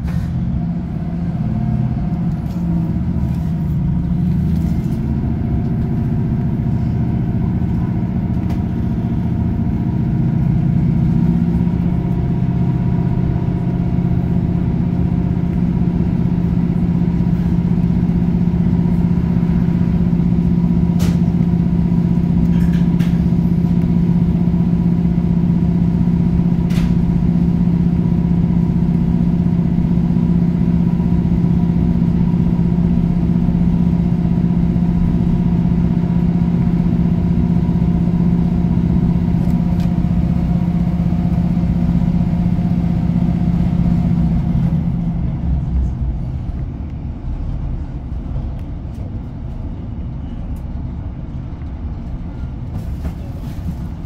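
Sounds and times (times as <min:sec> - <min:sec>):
train diesel engine droning: 0:00.0 - 0:54.0.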